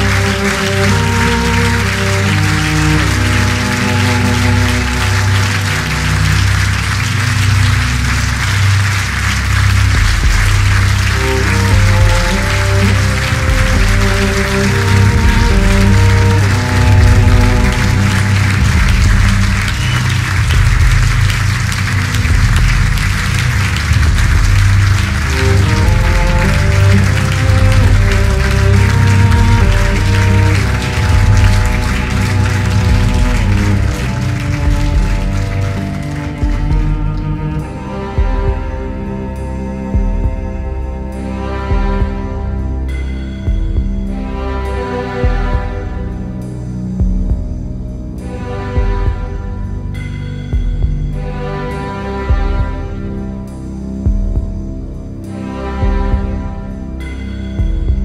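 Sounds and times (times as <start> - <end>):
drum band playing live: 18.6 - 37.1.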